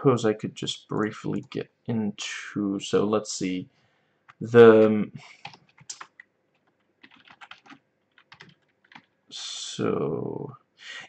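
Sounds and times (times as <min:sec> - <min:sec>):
computer keyboard typing: 0:04.3 - 0:09.2.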